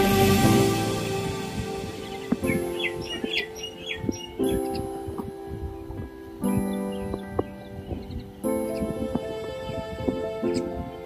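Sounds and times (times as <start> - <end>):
background music: 0.0 - 11.0
birds chirping and whistling: 1.8 - 11.0.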